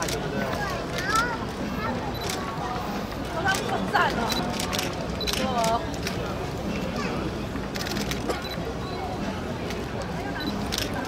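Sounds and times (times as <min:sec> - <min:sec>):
camera shutters clicking: 0:04.3 - 0:06.2, 0:07.8 - 0:08.3.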